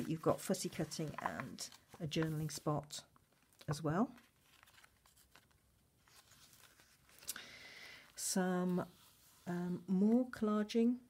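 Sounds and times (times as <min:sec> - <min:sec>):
paper pages turning: 0:00.0 - 0:07.4
sharp paper rustle: 0:04.2 - 0:07.3.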